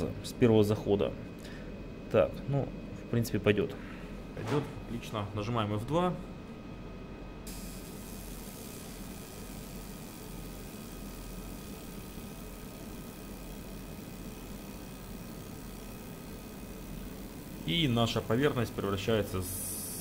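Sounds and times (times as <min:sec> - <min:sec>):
low mains hum: 0:00.0 - 0:20.0
laser marker hissing: 0:07.4 - 0:20.0.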